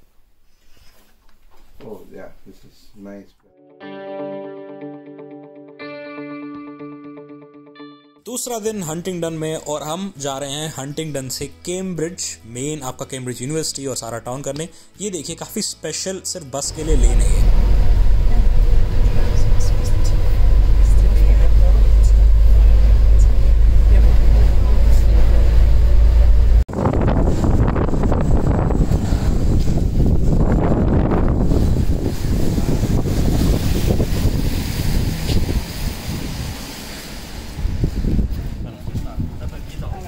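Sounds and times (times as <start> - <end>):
bus interior low rumble: 16.7 - 39.7
wind noise on microphone: 16.8 - 36.8, 37.4 - 40.0.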